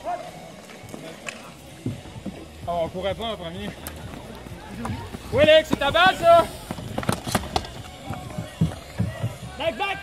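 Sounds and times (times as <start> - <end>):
running footsteps: 0.3 - 10.0.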